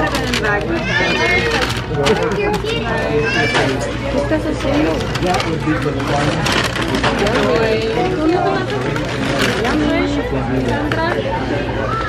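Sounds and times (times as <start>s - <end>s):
paper bag rustling: 0.0s - 11.0s
people talking indistinctly: 0.0s - 12.0s.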